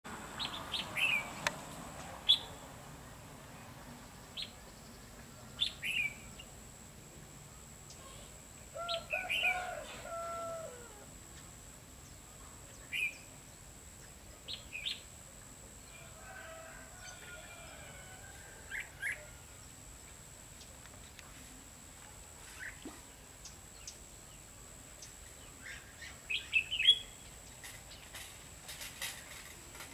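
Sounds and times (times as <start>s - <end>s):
birds chirping: 0.4s - 1.5s.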